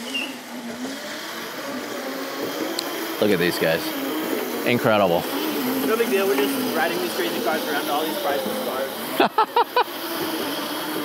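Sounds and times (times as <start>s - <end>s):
electric kart motor whine: 0.0s - 11.0s.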